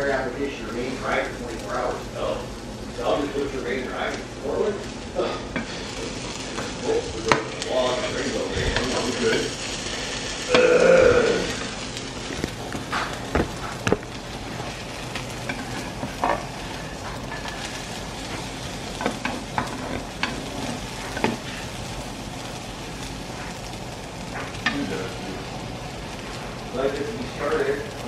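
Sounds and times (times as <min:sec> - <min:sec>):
food sizzling in a frying pan: 0:00.0 - 0:28.0
spatula scraping and knocking pan: 0:12.3 - 0:21.7.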